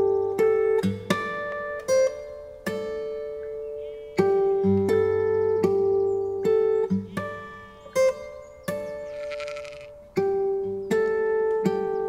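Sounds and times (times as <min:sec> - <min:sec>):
fingerstyle acoustic guitar: 0:00.0 - 0:12.0
sheep bleating: 0:08.9 - 0:10.1.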